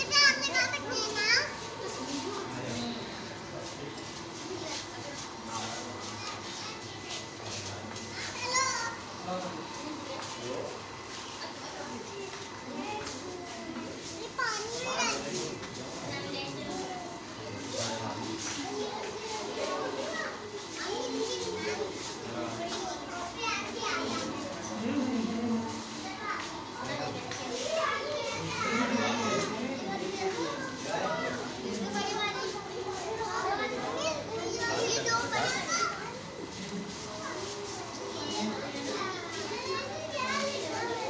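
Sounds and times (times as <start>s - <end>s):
children calling and chattering: 0.0s - 41.0s.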